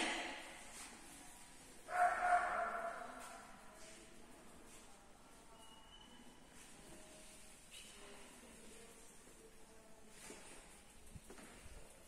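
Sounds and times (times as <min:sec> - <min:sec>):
dog barking high-pitched: 0:01.9 - 0:03.1.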